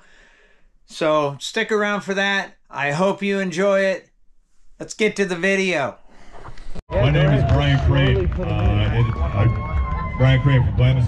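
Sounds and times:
man talking over public address: 0:06.9 - 0:09.5, 0:10.2 - 0:11.0.

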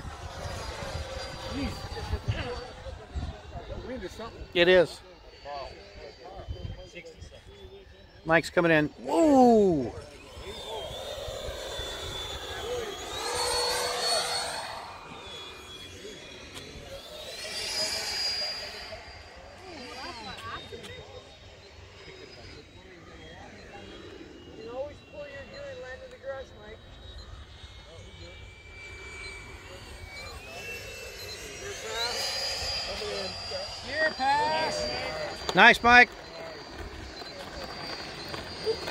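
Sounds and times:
electric ducted fan jets whining: 0:00.0 - 0:38.9.

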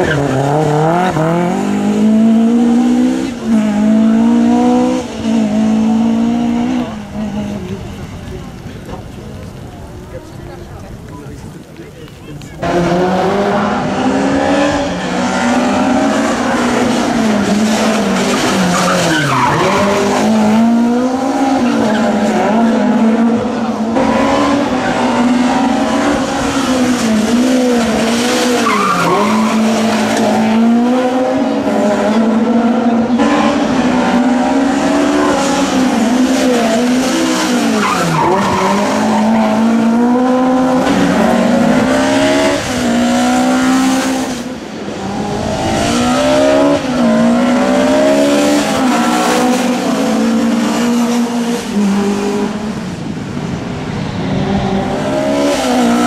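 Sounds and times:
rally car engine revving: 0:00.0 - 0:10.1, 0:12.4 - 0:56.0.

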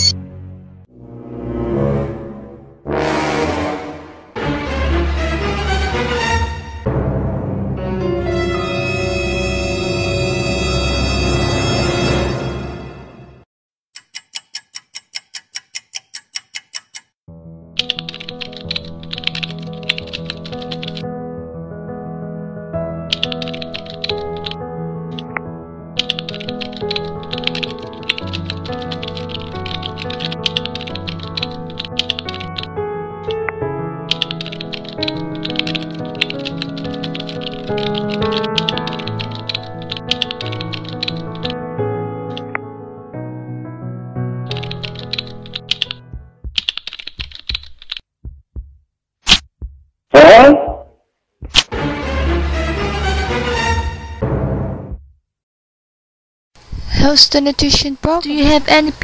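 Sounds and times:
background music: 0:00.0 - 0:13.4, 0:17.3 - 0:47.0, 0:51.5 - 0:55.0
keyboard keystroke clicks: 0:26.0 - 0:41.6, 0:42.3 - 0:42.6, 0:44.5 - 0:48.0.

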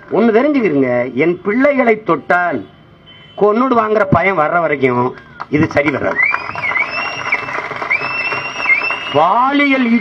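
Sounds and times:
crowd applauding: 0:05.2 - 0:10.0
long high whistle: 0:06.2 - 0:09.3.

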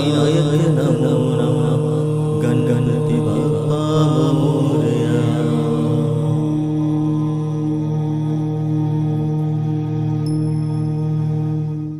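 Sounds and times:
steady drone: 0:00.0 - 0:11.9
wavering chanted vocal: 0:00.0 - 0:11.9.

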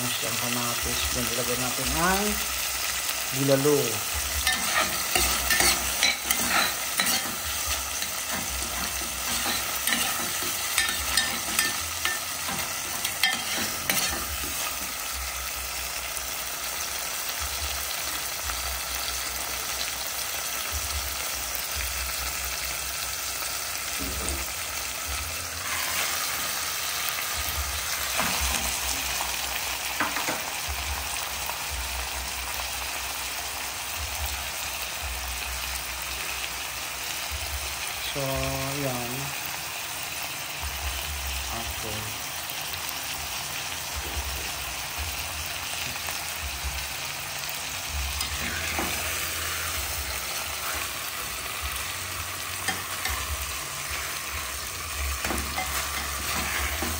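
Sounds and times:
onion and tomato sizzling: 0:00.0 - 0:56.9
utensil scraping pot: 0:04.4 - 0:15.0, 0:25.6 - 0:26.8, 0:48.2 - 0:51.2, 0:55.1 - 0:56.9.

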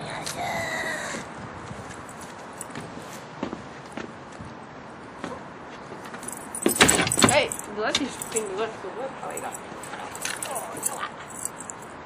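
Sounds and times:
light metallic jingling: 0:02.0 - 0:02.8, 0:06.0 - 0:12.0.

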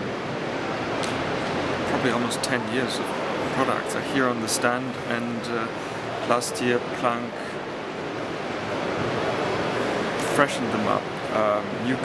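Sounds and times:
busy hall background hiss: 0:00.0 - 0:12.0.

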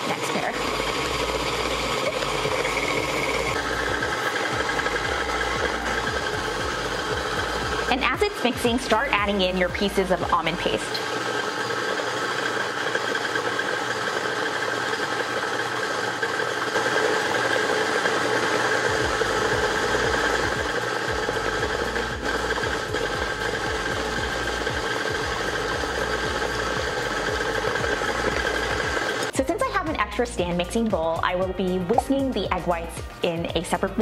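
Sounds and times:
stand mixer beating: 0:00.0 - 0:30.4.

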